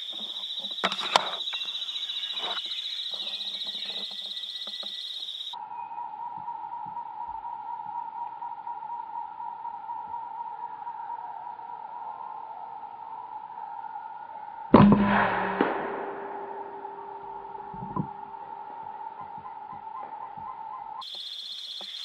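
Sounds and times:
insects buzzing: 0:00.0 - 0:05.6, 0:20.7 - 0:22.0.

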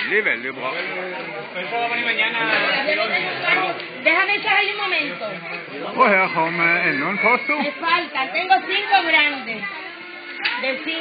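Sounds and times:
people chattering: 0:00.0 - 0:11.0
man speaking: 0:05.9 - 0:07.7.

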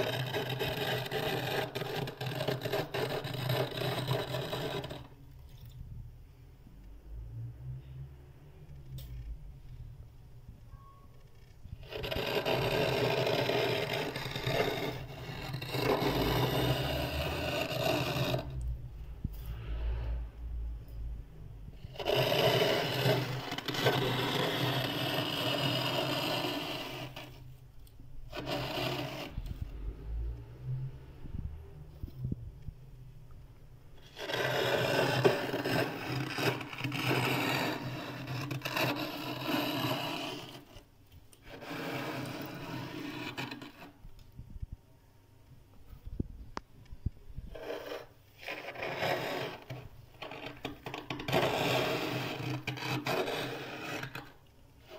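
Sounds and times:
spoon scraping frost: 0:00.0 - 0:05.8, 0:11.8 - 0:18.7, 0:21.8 - 0:27.6, 0:28.3 - 0:29.6, 0:34.0 - 0:44.0, 0:47.4 - 0:54.9.

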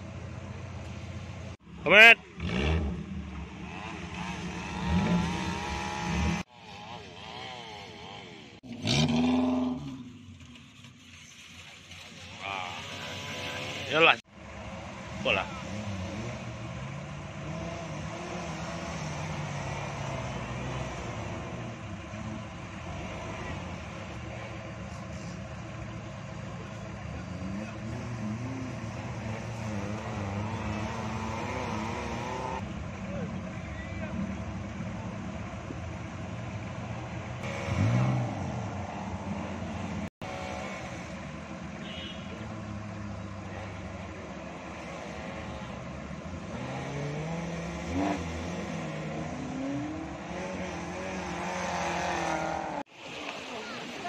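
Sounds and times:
small off-road engines revving: 0:01.3 - 0:54.0.

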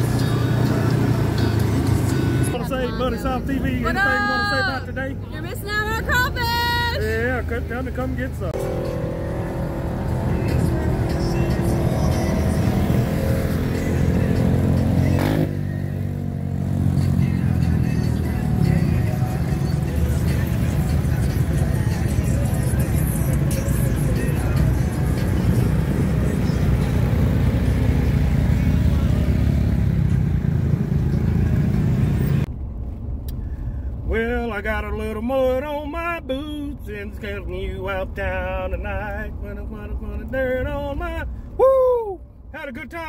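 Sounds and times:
music playing: 0:00.0 - 0:07.2, 0:08.5 - 0:29.6
off-road vehicle engines running: 0:00.0 - 0:42.6.

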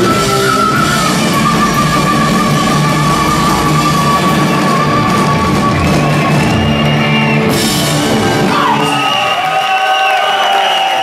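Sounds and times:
audience cheering and applauding: 0:00.0 - 0:11.0.

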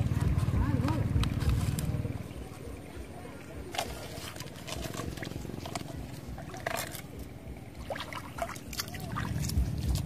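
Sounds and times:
wind rumble on microphone: 0:00.0 - 0:02.5, 0:08.3 - 0:10.0
small water splashes: 0:03.6 - 0:10.0.

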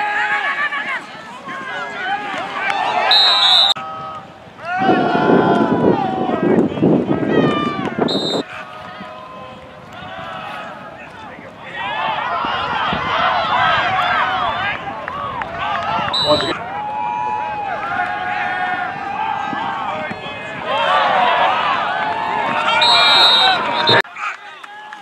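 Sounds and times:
players shouting: 0:00.0 - 0:25.0
high whistle blast: 0:03.1 - 0:03.8, 0:08.1 - 0:08.4, 0:16.2 - 0:16.5, 0:22.8 - 0:24.0.

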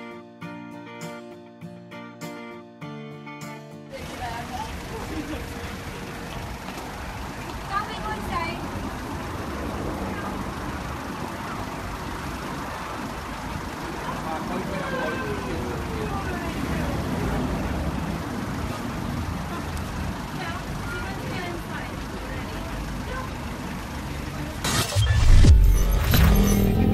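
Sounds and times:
traffic rumble: 0:03.9 - 0:26.9
loud whoosh: 0:24.6 - 0:26.9.

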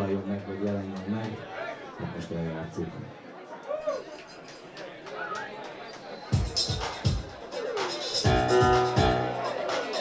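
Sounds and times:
deep synthesized kick drum: 0:08.3 - 0:09.4.

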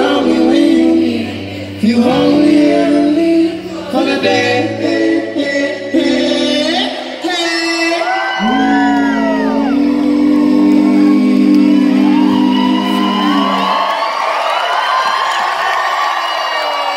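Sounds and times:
person singing: 0:00.0 - 0:13.8
crowd cheering and whooping: 0:07.9 - 0:16.9.

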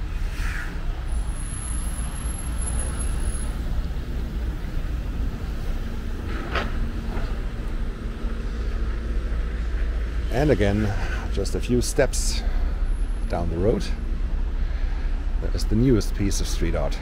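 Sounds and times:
vehicle engine rumbling: 0:00.0 - 0:17.0.

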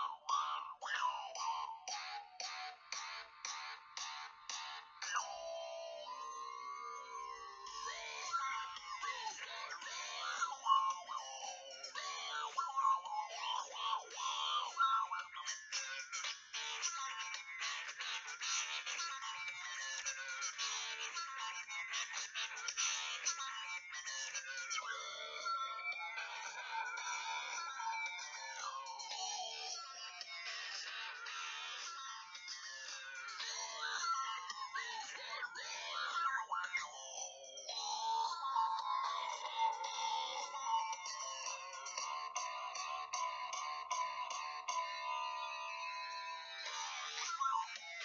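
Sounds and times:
electronic music from phone speaker: 0:00.0 - 0:48.0.

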